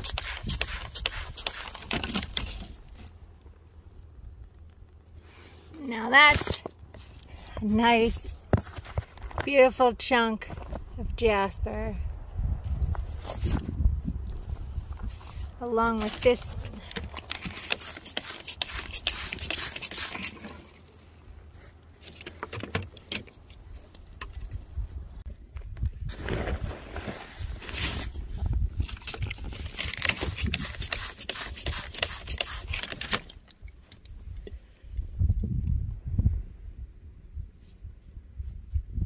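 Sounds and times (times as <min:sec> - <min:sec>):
rock and dirt scraping: 0:05.2 - 0:12.0, 0:12.6 - 0:25.1, 0:25.8 - 0:33.9.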